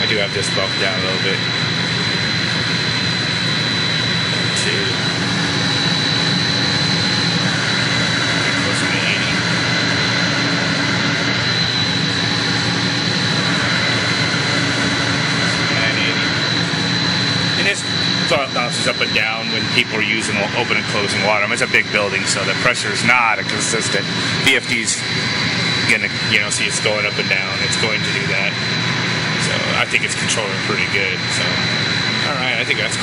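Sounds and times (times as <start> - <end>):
high whine: 0.0 - 33.0
low hum: 0.0 - 33.0
pump motor drone: 0.0 - 33.0.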